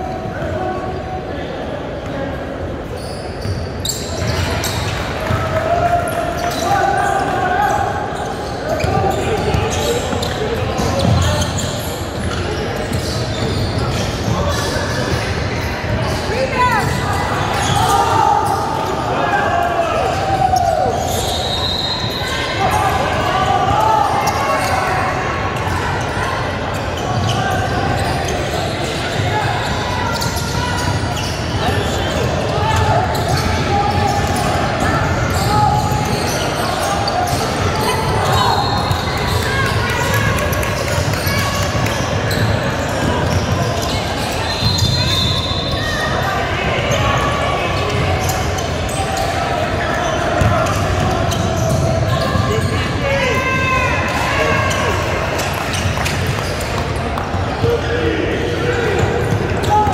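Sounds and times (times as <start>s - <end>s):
sneakers squeaking: 2.0s - 59.9s.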